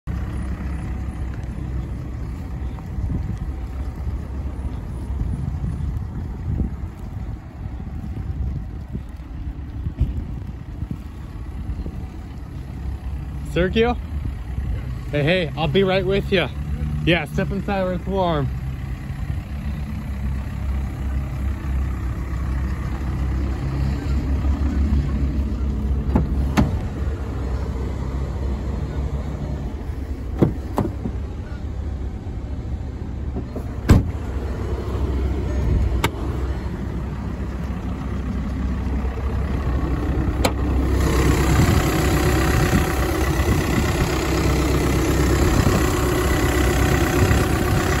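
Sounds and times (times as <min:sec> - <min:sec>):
diesel engine idling: 0:00.0 - 0:48.0.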